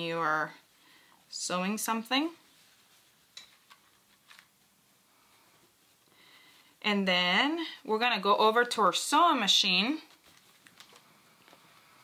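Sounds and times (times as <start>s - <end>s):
fabric rustling: 0.0s - 6.8s, 9.7s - 12.0s.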